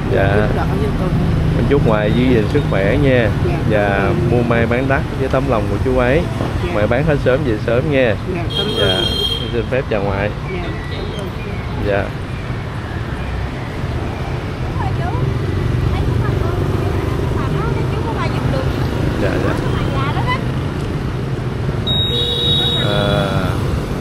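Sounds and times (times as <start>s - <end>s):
background voices: 0.0s - 9.2s
motorbike traffic: 0.0s - 24.0s.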